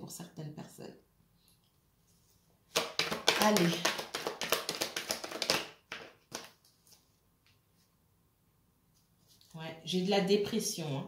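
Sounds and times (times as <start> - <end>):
cards being shuffled: 2.7 - 7.1.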